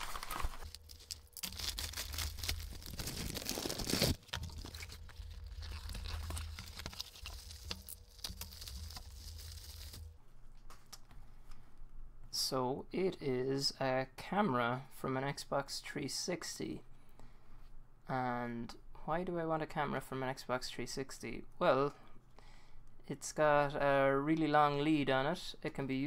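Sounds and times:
cardboard box rustling: 0.0s - 10.1s
plastic mailer bag tearing: 0.0s - 10.1s.

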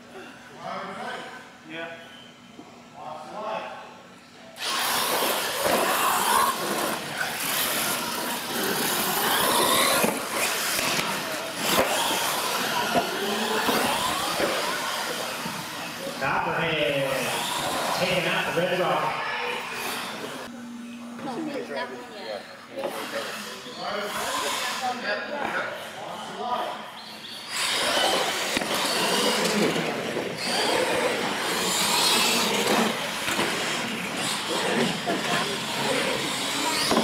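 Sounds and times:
rc truck motor whine: 4.6s - 16.2s, 17.1s - 21.6s, 25.8s - 37.0s.

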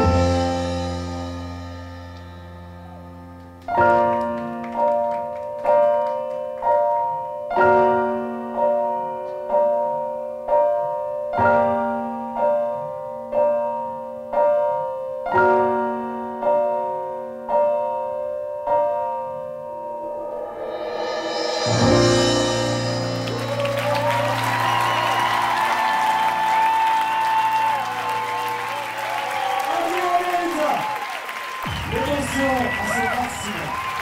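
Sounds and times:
piano playing slow chords: 0.0s - 29.2s.

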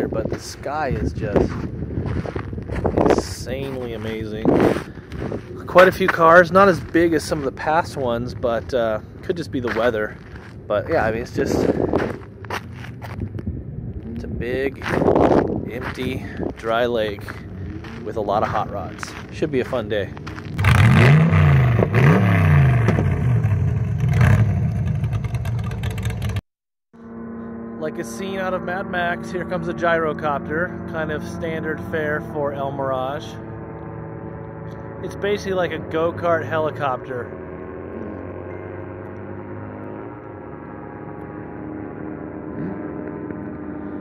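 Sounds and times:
wind noise: 0.0s - 20.8s
gyrocopter droning overhead: 0.0s - 26.4s, 27.0s - 44.0s
car engine accelerating hard: 20.1s - 26.4s, 33.2s - 44.0s.

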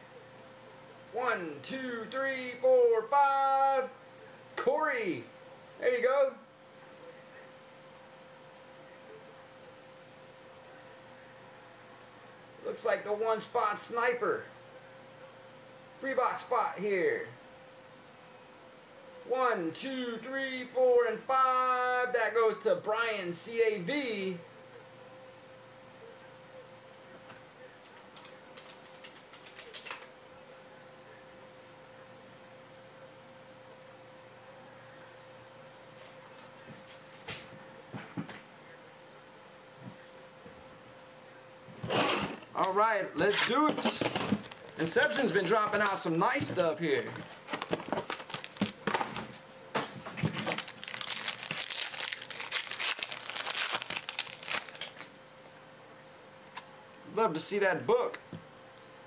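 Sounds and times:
faint steady hum: 0.0s - 59.0s
foil wrapper crinkling and tearing: 47.5s - 48.8s, 50.3s - 55.1s.

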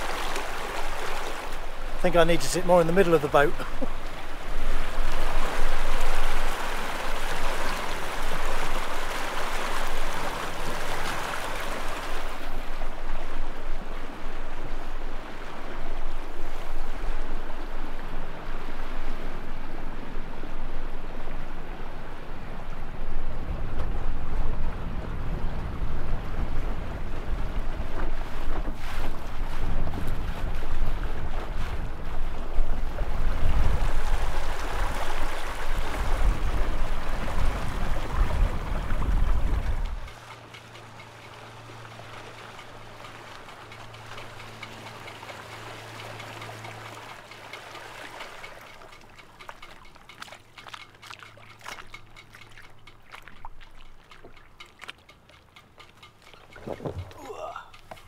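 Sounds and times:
water rushing and splashing: 0.0s - 58.0s
wind buffeting microphone: 20.2s - 40.2s, 56.4s - 58.0s.

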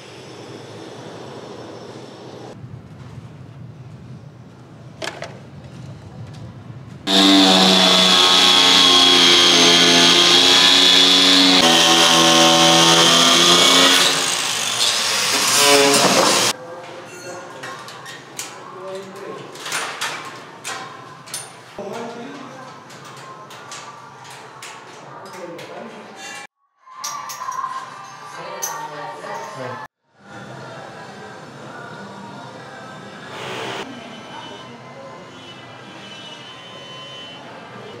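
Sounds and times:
power tool motor running: 7.1s - 16.5s
tools knocking on metal and concrete: 15.9s - 16.5s.

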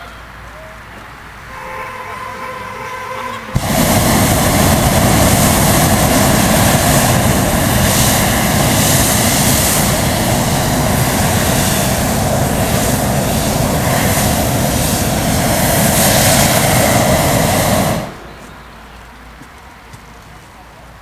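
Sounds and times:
propane burner blast: 3.4s - 18.3s.

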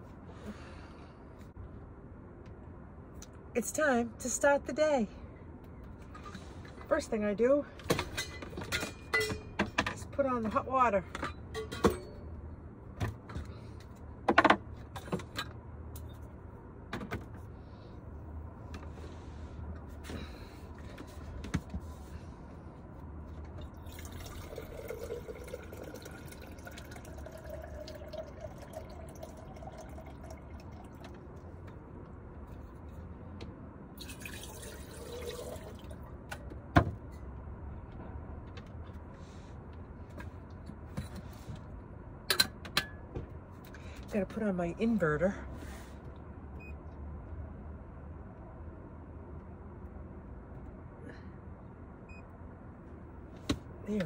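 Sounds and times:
knocks and clunks of handling: 14.2s - 15.6s
water pouring into kettle: 23.8s - 31.0s, 34.0s - 35.9s.

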